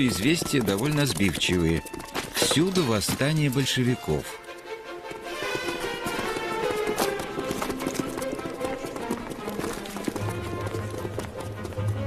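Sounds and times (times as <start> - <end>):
rapid clicking and clattering: 0.0 - 4.0
film soundtrack music: 0.2 - 12.0.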